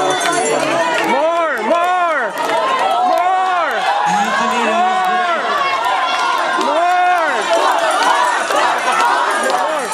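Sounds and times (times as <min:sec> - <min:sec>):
excited chatter: 0:00.0 - 0:09.9.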